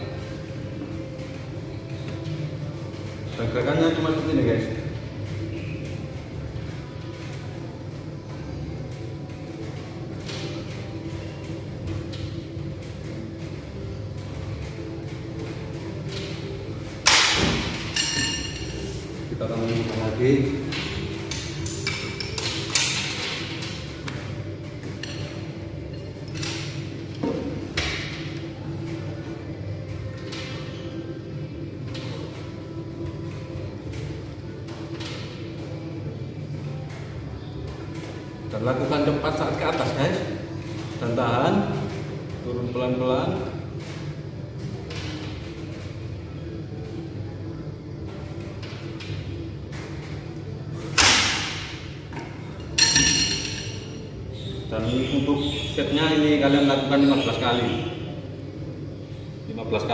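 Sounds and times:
background music: 0:00.0 - 0:59.9
metallic clanks of gym machine: 0:17.0 - 0:18.9, 0:50.9 - 0:53.9.

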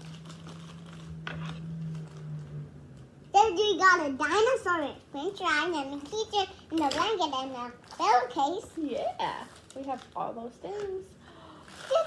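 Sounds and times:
plastic bag crinkling: 0:00.0 - 0:03.0, 0:07.7 - 0:12.0.

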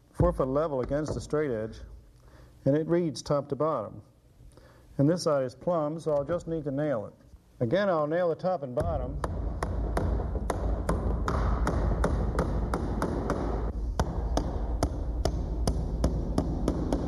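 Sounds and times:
hammer tapping nail into wood: 0:08.8 - 0:17.0.

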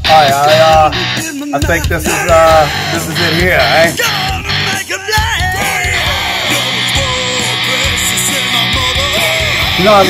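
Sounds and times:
person yelling vocals: 0:00.0 - 0:10.0
punk rock song with band: 0:00.0 - 0:10.0
steady drum beat: 0:00.0 - 0:10.0.

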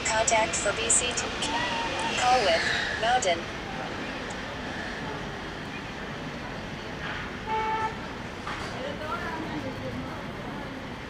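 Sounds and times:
outdoor background hum: 0:00.0 - 0:11.0
short horn toot: 0:07.4 - 0:08.0.

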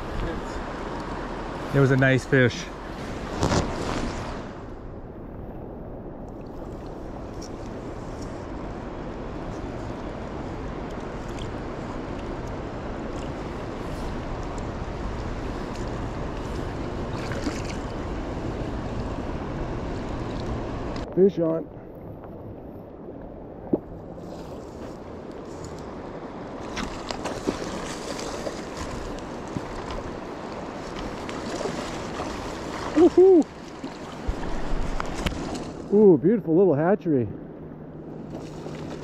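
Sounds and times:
river water rushing: 0:08.7 - 0:21.0, 0:25.9 - 0:36.0.

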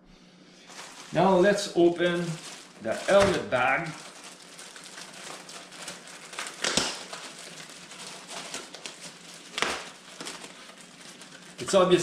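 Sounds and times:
plastic bag crinkling: 0:00.6 - 0:12.0.

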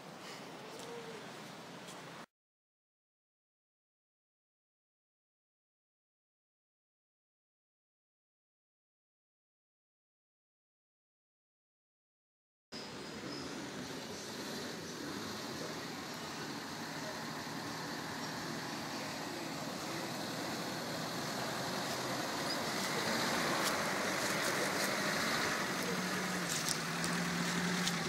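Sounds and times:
car engine crawling: 0:13.5 - 0:28.0.

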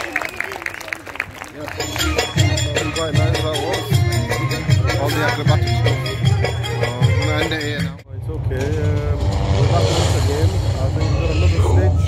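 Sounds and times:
steady low rumble: 0:08.0 - 0:12.0.

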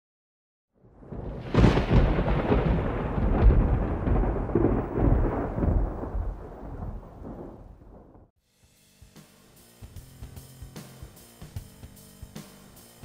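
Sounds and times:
rain: 0:00.8 - 0:08.3
thunder rumbling: 0:00.8 - 0:08.3.

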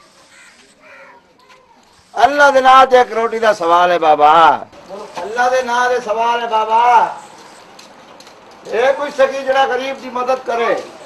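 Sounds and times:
faint bird calls: 0:00.0 - 0:02.1.

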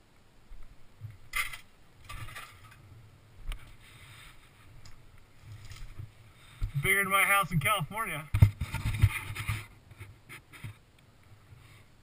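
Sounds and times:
man's voice: 0:06.8 - 0:08.3.

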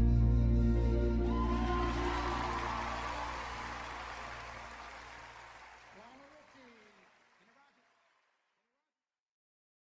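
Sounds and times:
audience applause: 0:01.3 - 0:08.4.

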